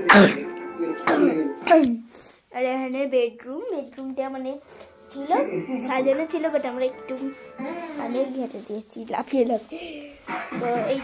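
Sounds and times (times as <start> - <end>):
girl coughing: 0.0 - 0.4, 1.0 - 1.9
background music: 0.0 - 2.0, 4.2 - 8.9, 9.7 - 11.0.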